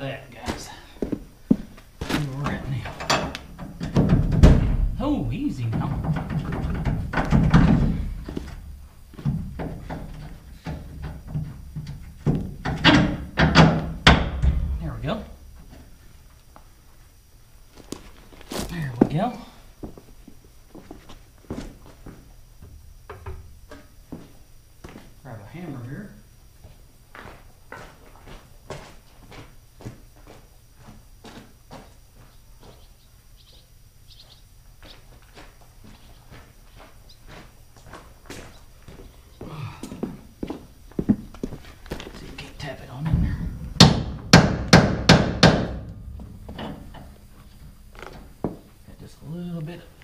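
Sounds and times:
footsteps: 0:00.4 - 0:12.6, 0:17.7 - 0:22.8, 0:23.7 - 0:25.2, 0:26.6 - 0:33.0, 0:34.2 - 0:49.2.

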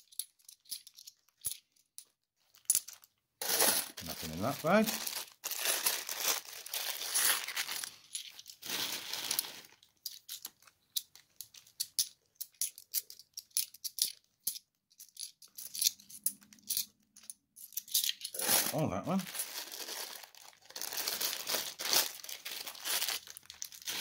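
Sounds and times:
plastic bag crinkling: 0:02.9 - 0:09.9, 0:18.3 - 0:24.0.

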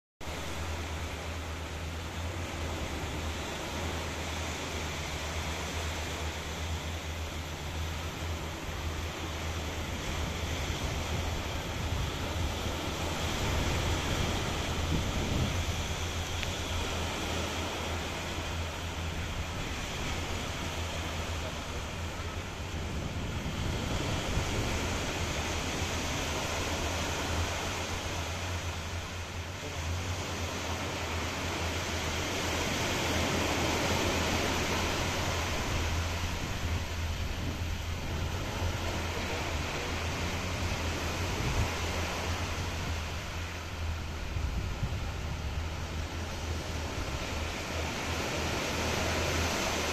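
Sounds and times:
small waves washing onto beach: 0:00.2 - 0:49.9
wind rumble on microphone: 0:00.2 - 0:49.9.

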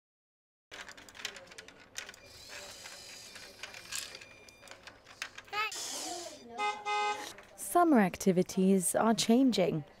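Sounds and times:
toy robot motor whirring: 0:02.2 - 0:04.2, 0:05.0 - 0:06.4.

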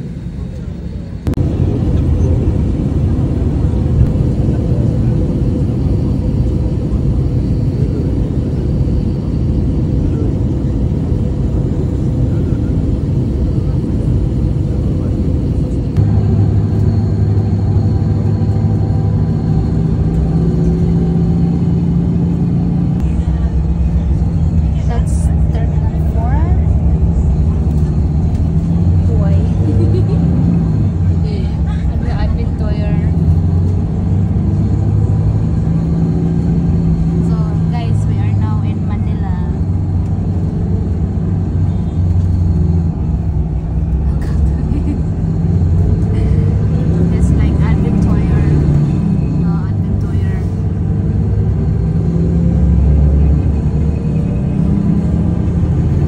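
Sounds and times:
road noise: 0:00.0 - 0:56.0
vehicle engine rumble: 0:00.0 - 0:56.0
voices talking: 0:23.0 - 0:33.8, 0:43.3 - 0:50.9.

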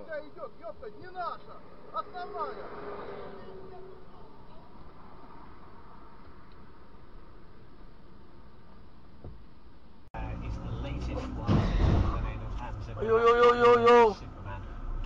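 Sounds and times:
low traffic hum: 0:00.0 - 0:15.0.

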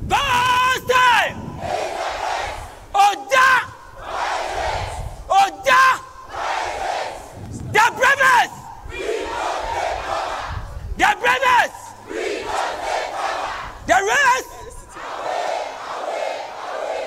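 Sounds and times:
group chanting in unison: 0:01.3 - 0:03.0, 0:03.8 - 0:05.3, 0:06.0 - 0:07.4, 0:08.6 - 0:10.8, 0:11.4 - 0:13.9, 0:14.8 - 0:17.0.

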